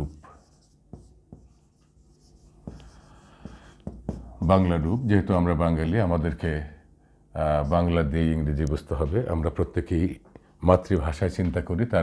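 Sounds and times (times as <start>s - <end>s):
marker rubbing on whiteboard: 0.0s - 4.4s
marker tip tapping whiteboard: 2.6s - 4.3s.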